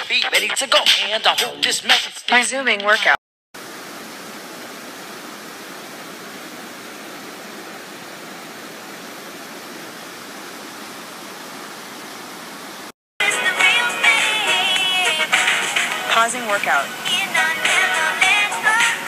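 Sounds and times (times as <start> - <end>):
creek water rushing over rocks: 3.6 - 19.0.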